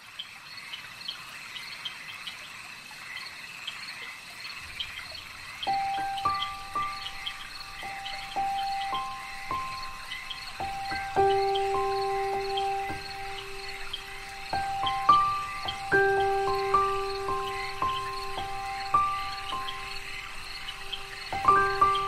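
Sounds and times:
frogs and insects chirping: 0.0s - 22.0s
slow melody of held notes: 5.6s - 22.0s.

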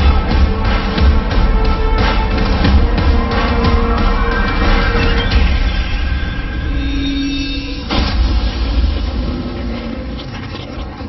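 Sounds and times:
boom: 7.8s - 9.9s.

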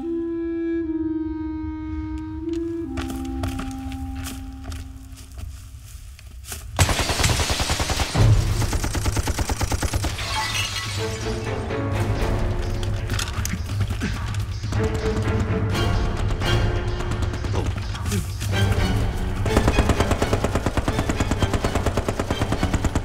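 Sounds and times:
heavy rapid gunfire: 6.8s - 10.2s, 19.4s - 23.0s.

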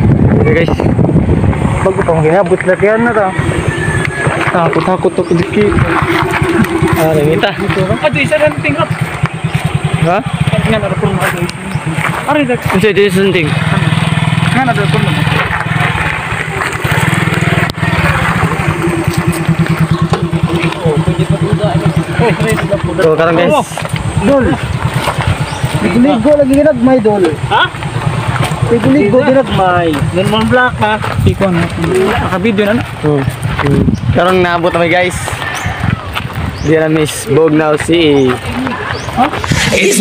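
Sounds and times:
motorcycle engine idling: 0.0s - 40.0s
steady low rumble: 0.0s - 40.0s.

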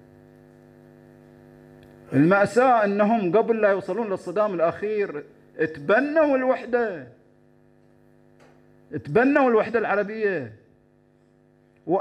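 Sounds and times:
faint electrical mains hum: 0.0s - 12.0s
man speaking: 2.1s - 7.2s, 8.9s - 10.6s.

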